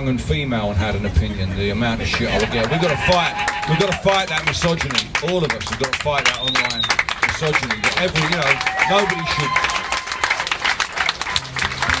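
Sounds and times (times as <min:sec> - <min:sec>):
audience applauding: 0:02.0 - 0:12.0.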